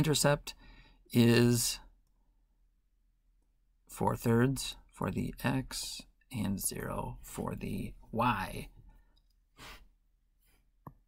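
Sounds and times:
soft breath out: 0.6 - 1.1.

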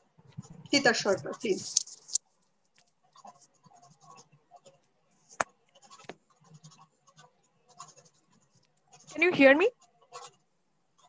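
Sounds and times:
scratching and rustling on microphone: 0.0 - 11.0.

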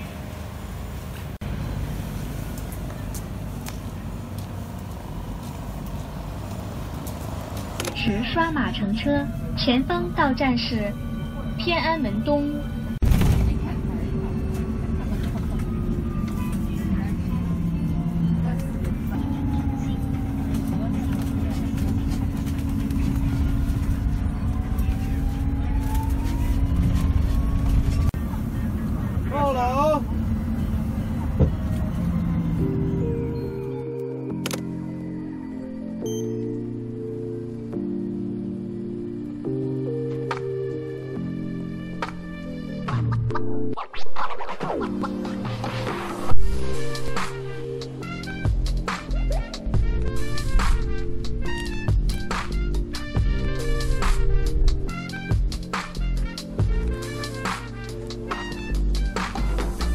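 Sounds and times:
bus drivetrain and road rumble: 0.0 - 59.9
electronic music with sliding tones: 38.8 - 59.9.

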